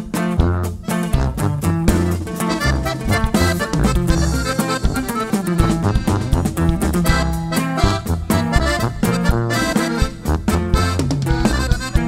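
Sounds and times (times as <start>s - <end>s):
accordion lead: 0.0s - 12.0s
bass line: 0.0s - 12.0s
driving rhythm: 0.0s - 12.0s.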